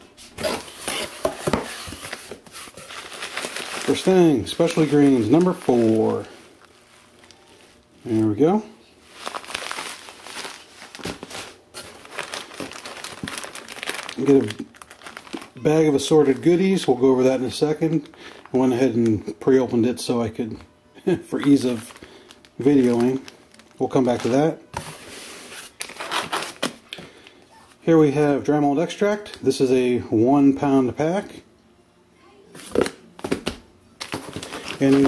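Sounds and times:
plastic bags crinkling: 0:00.4 - 0:17.0, 0:21.3 - 0:24.6, 0:25.5 - 0:26.8, 0:34.0 - 0:35.0
man speaking: 0:14.2 - 0:14.7.

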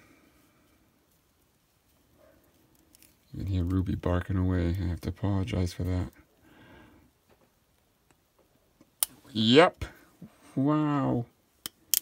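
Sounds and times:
dog barking faintly: 0:02.1 - 0:02.6.

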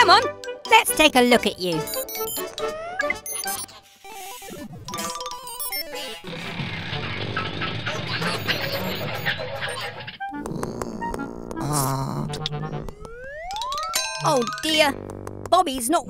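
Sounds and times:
cartoon music: 0:00.0 - 0:15.0.

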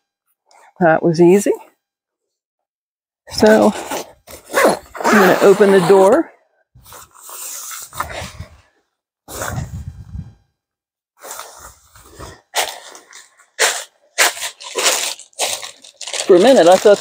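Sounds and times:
tent zipper being pulled: 0:03.4 - 0:06.2, 0:06.8 - 0:08.5, 0:09.3 - 0:09.9, 0:11.2 - 0:17.0
tent fabric rustling: 0:11.2 - 0:17.0.

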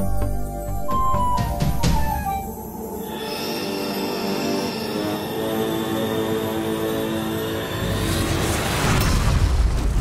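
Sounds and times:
shimmering drone: 0:02.1 - 0:08.8.

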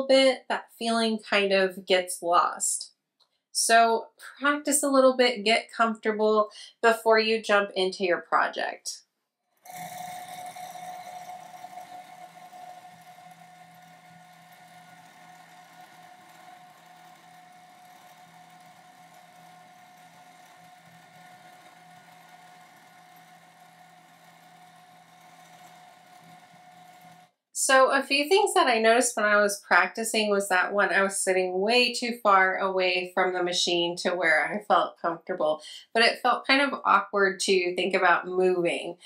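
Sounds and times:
sewing machine motor humming: 0:09.6 - 0:27.4.

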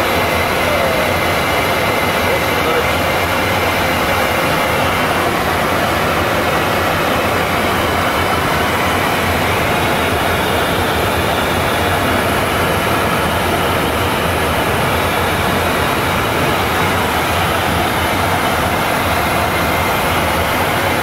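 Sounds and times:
airflow rushing over cockpit: 0:00.0 - 0:21.0
jet engines humming: 0:00.0 - 0:21.0.

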